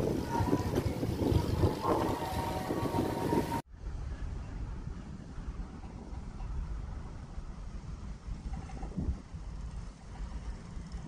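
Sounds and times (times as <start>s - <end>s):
road traffic hum: 0.0s - 11.0s
wind buffeting microphone: 0.0s - 11.0s.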